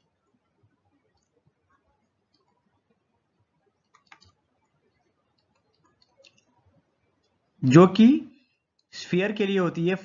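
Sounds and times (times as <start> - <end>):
faint clicks: 0.0 - 7.4, 8.7 - 9.0
man speaking: 7.6 - 10.0.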